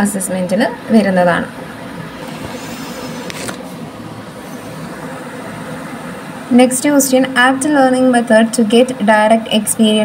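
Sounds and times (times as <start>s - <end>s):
background hum and hiss: 0.0s - 10.0s.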